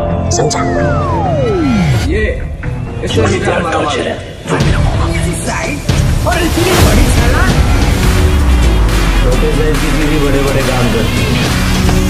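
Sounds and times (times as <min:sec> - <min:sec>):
trailer music with heavy bass: 0:00.0 - 0:12.0.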